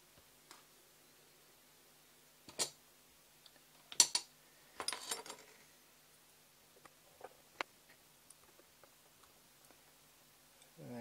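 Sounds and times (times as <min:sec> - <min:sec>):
clinks of parts: 0:03.9 - 0:05.6.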